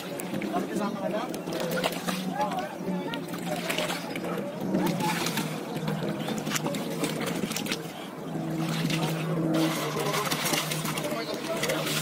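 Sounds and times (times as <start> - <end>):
engine running: 0.0 - 12.0.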